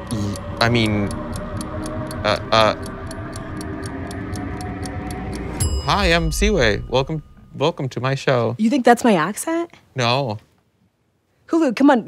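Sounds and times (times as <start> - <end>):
suspense music with ticking: 0.0 - 8.0.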